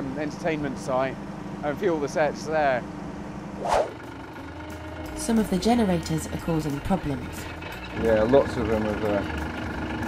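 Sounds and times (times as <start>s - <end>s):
engine humming: 0.0s - 10.0s.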